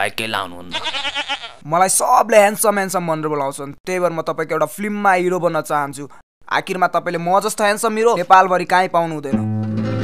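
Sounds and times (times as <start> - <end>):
man speaking: 0.0 - 0.9, 1.6 - 9.4
sheep-like bleat: 0.7 - 1.6.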